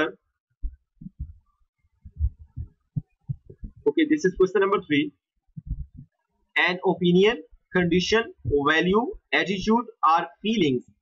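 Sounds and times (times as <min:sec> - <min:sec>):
person speaking: 0:00.0 - 0:00.3, 0:02.1 - 0:11.0
soft deep thumps: 0:00.6 - 0:06.2.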